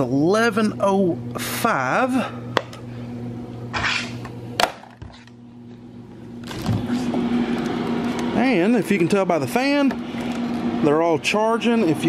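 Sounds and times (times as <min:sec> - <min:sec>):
cooling fans humming: 0:00.0 - 0:12.0.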